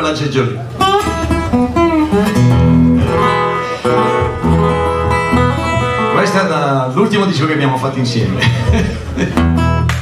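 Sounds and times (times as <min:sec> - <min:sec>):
acoustic guitar: 0:00.0 - 0:10.0
resonator guitar: 0:00.6 - 0:07.0, 0:07.7 - 0:10.0.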